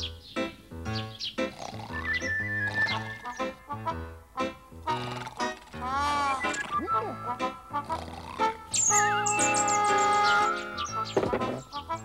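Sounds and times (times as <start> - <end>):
cartoon background music: 0.0 - 12.0
high chirping whistles: 1.2 - 3.5, 6.1 - 7.4, 8.7 - 11.2.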